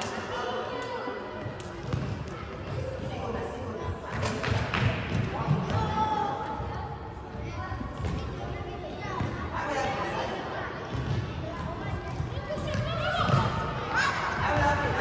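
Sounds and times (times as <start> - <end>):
voices shouting in a hall: 12.3 - 15.0.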